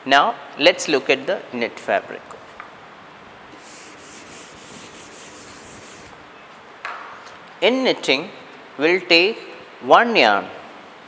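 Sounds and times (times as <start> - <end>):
whiteboard being wiped: 3.5 - 6.2.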